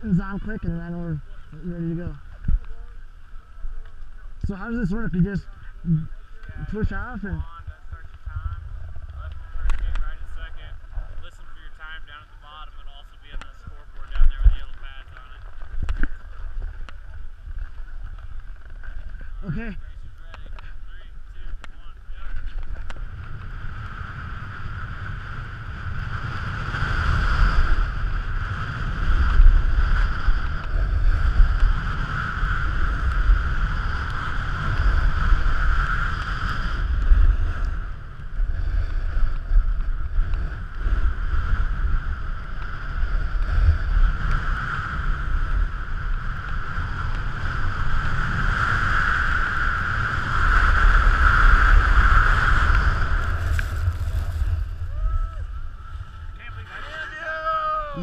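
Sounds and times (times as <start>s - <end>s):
wind buffeting microphone: 0.0s - 58.0s
snowboard scraping over snow: 13.7s - 58.0s.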